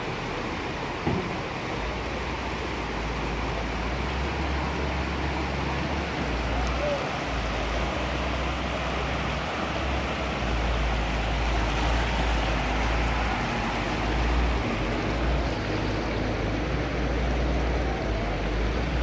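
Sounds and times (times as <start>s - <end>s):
floodwater rushing: 0.0s - 19.0s.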